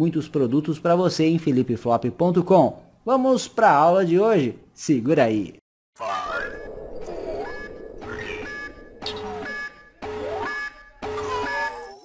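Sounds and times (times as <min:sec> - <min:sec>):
rising electronic sweep: 0:06.2 - 0:11.4
short steady beeps: 0:06.5 - 0:12.0.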